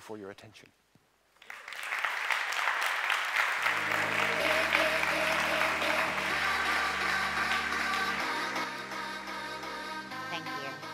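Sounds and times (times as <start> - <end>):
audience applauding: 1.4 - 8.7.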